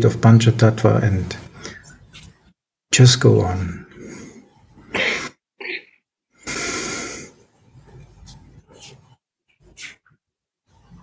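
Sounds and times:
person breathing into microphone: 0:06.4 - 0:07.5.

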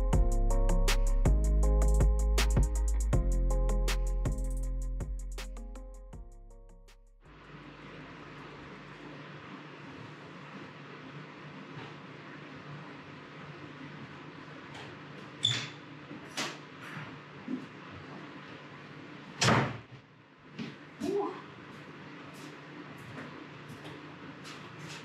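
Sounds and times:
background music: 0:00.0 - 0:07.0.

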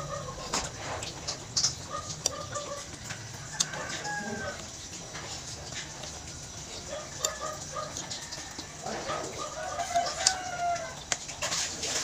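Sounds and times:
sharp wet clicks: 0:00.6 - 0:11.6.

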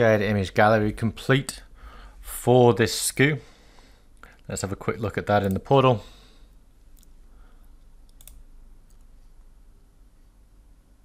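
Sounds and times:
low steady hum: 0:00.0 - 0:11.0
computer mouse clicks: 0:05.4 - 0:05.6, 0:08.0 - 0:09.1.

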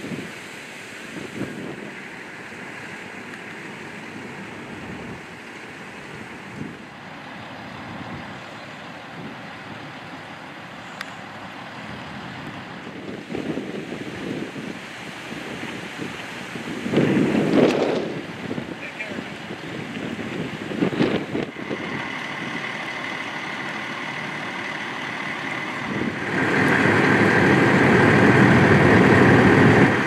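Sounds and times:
fire engines running: 0:00.0 - 0:30.0
steady rushing noise: 0:00.0 - 0:30.0
rough bursts: 0:21.0 - 0:30.0.

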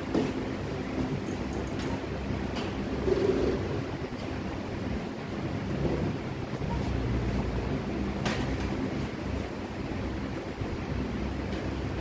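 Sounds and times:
low rumble and hiss: 0:00.0 - 0:12.0.

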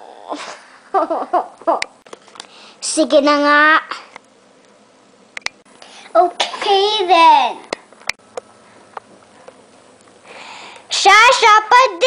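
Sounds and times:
sharp clicks: 0:05.4 - 0:05.6
child's breathy inhale: 0:10.2 - 0:10.9.

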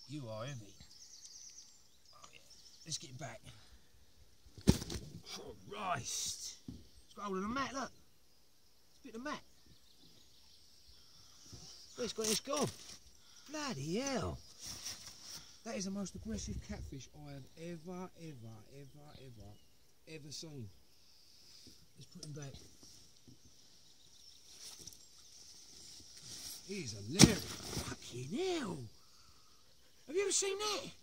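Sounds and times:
soft rustles: 0:14.5 - 0:15.5, 0:24.3 - 0:28.1.

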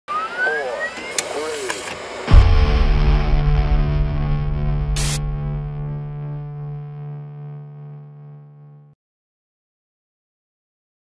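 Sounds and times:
rising electronic whistling tone: 0:00.1 - 0:01.2.

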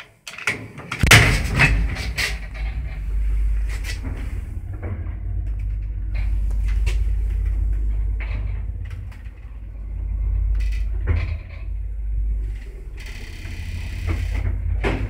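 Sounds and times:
lift doors sliding and clattering: 0:00.4 - 0:15.0
lift running with low rumble: 0:01.0 - 0:15.0.

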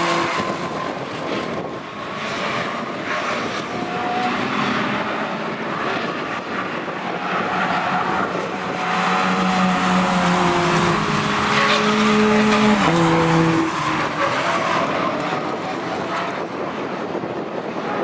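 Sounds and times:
racing car engine passing: 0:00.0 - 0:16.6.

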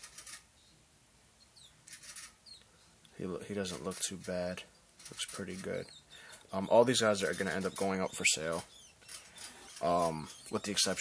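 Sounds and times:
quick high chirps: 0:05.0 - 0:11.0.

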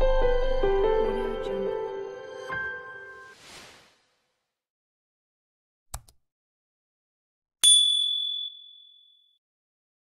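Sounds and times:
bright bell ding: 0:07.6 - 0:09.2.

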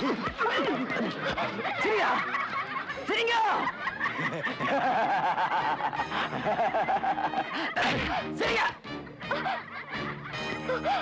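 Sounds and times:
crowd laughing: 0:00.0 - 0:11.0
man laughing loudly: 0:03.6 - 0:08.3, 0:09.2 - 0:11.0.

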